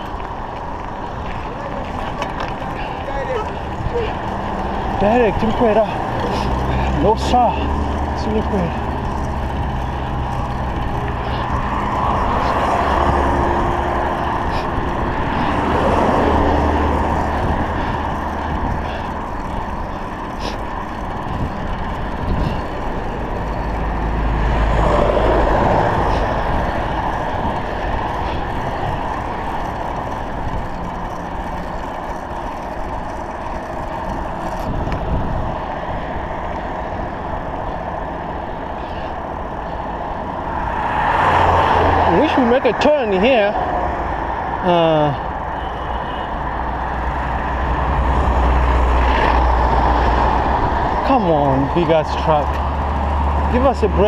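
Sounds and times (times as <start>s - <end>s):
motor vehicles passing: 0.0s - 54.0s
wind on microphone: 9.3s - 31.0s, 34.0s - 38.8s, 46.5s - 51.1s.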